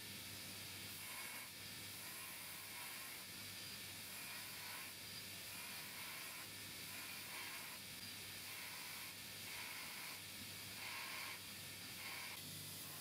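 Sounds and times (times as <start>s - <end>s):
steel file grinding on belt: 4.1s - 7.8s.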